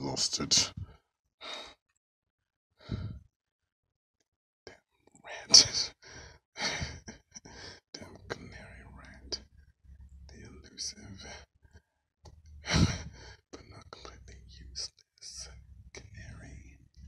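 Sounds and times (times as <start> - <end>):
person whispering: 0.0 - 0.8, 5.2 - 6.0, 7.9 - 9.4, 10.3 - 11.5, 12.6 - 16.8.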